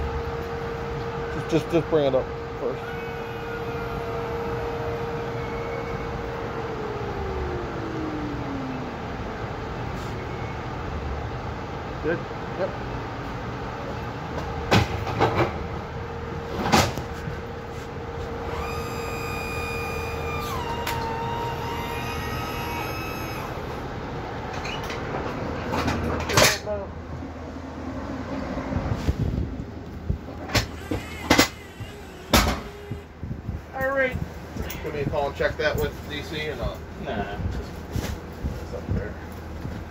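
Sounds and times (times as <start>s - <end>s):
whining tone: 0.0s - 11.0s, 18.1s - 25.0s, 30.3s - 33.6s
stretcher clunks and clicks: 30.3s - 33.1s.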